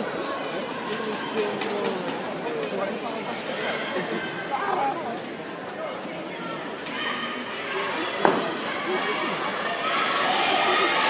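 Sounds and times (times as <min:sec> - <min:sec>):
crowd chatter and shouting: 0:00.0 - 0:11.0.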